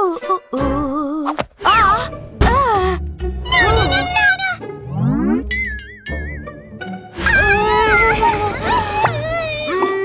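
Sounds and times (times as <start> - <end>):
high warbling tone: 3.6 - 6.2
rising pitch glide: 4.6 - 6.3.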